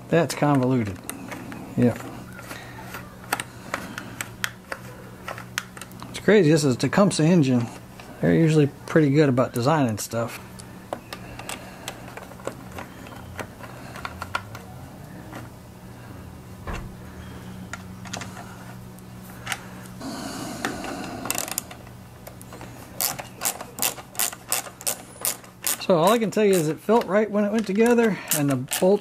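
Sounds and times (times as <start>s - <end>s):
hand ratchet clicking: 21.2s - 21.8s, 23.0s - 26.8s, 27.5s - 29.0s.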